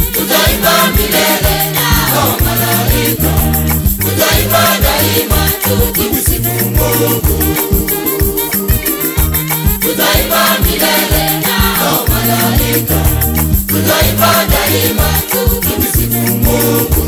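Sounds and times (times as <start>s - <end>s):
gospel choir singing: 0.0s - 17.0s
rattling percussion: 0.0s - 17.0s
steady beat with bass line: 0.0s - 17.0s.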